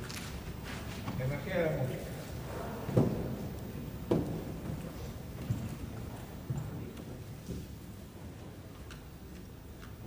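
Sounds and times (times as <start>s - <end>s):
murmur of a large hall: 0.0s - 10.0s.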